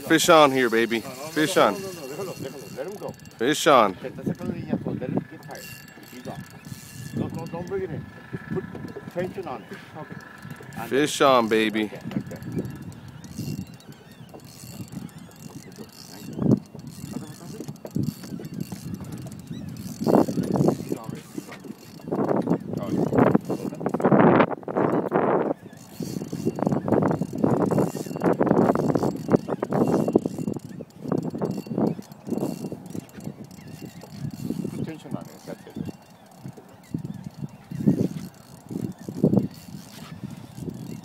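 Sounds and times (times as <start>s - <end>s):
fishing reel ratcheting: 0.0s - 41.0s.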